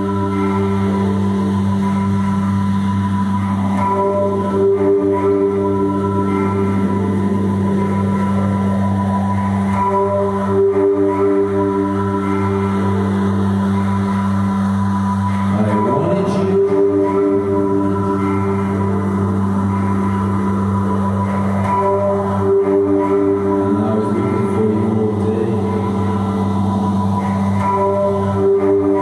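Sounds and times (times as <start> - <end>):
synthesizer drone music: 0.0 - 29.0.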